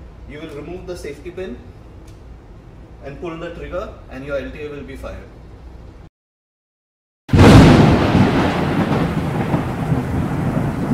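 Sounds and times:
rocket firing blast: 7.3 - 10.9.

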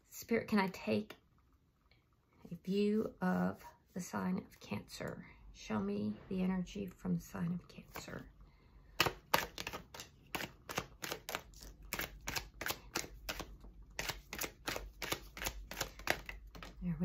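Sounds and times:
cards being shuffled: 9.0 - 16.8.

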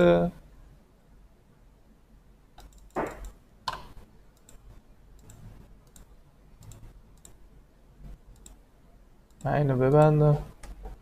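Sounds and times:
computer mouse clicks: 2.6 - 4.6, 5.2 - 7.4, 8.3 - 8.6, 9.3 - 11.0.

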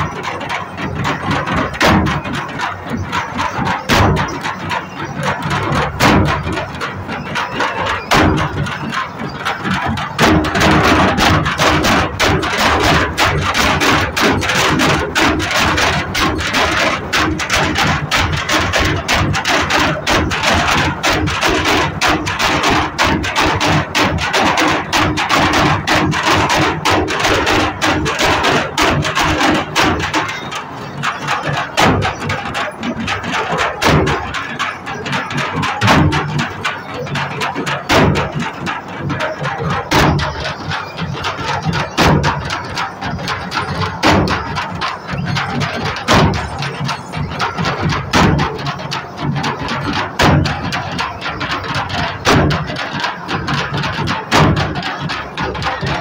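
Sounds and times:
percussion drumming: 0.0 - 56.0
crowd chatter: 29.6 - 48.4.

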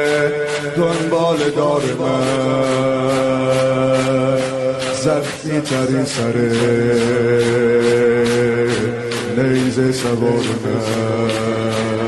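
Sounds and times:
man singing a lament: 0.0 - 12.0.

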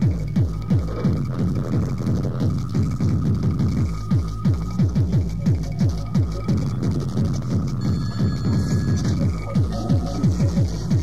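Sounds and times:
rapid falling kick drums: 0.0 - 11.0
faint steady high tone: 7.8 - 11.0.

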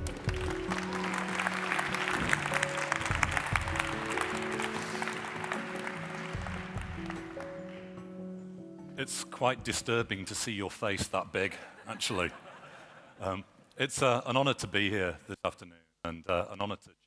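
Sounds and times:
audience applauding: 0.0 - 8.1
walk-on music with long notes: 0.0 - 9.8.

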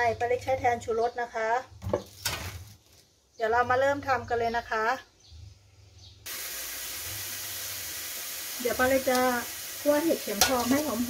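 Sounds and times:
mushrooms sizzling in a wok: 6.3 - 11.0.

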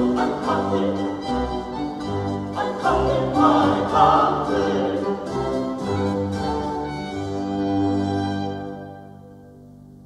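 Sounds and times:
mixed choir singing: 0.0 - 5.7
baroque ensemble bass notes: 0.0 - 10.0.

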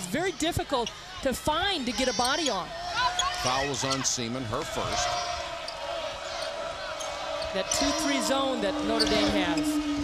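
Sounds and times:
crowd noise: 0.0 - 10.0
commentator talking: 7.6 - 9.9.

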